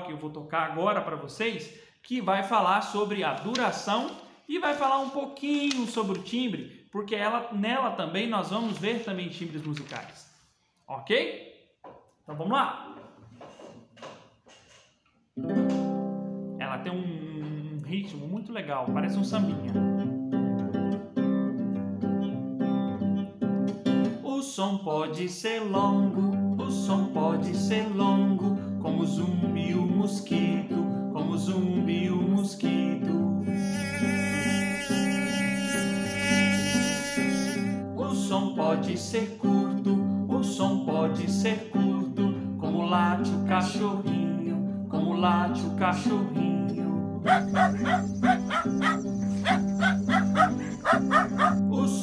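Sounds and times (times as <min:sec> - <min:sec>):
voices singing: 0:33.0 - 0:39.6, 0:47.2 - 0:52.0
acoustic guitar strumming: 0:33.2 - 0:38.3, 0:46.8 - 0:51.7.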